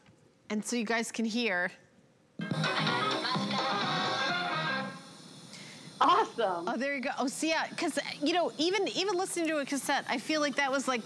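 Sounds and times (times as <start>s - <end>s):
music from cassette player speakers: 2.4s - 5.2s.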